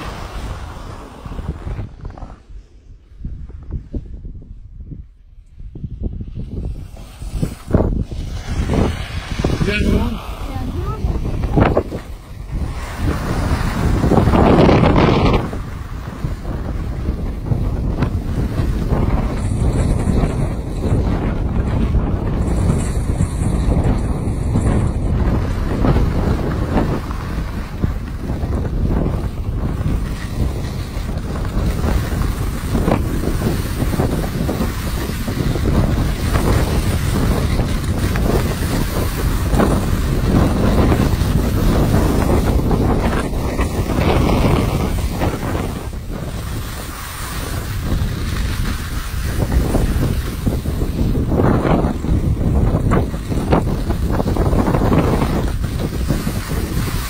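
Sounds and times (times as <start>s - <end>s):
skis hissing over snow: 0.0s - 3.0s, 6.2s - 57.0s
wind buffeting microphone: 0.0s - 57.0s.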